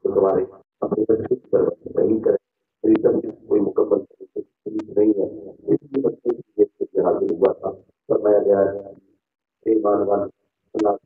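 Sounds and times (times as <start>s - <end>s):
man talking into microphone: 0.0s - 9.0s, 9.7s - 11.0s.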